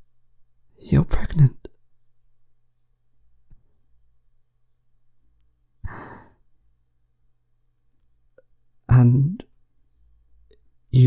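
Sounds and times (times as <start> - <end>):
man sighing: 5.8 - 6.4.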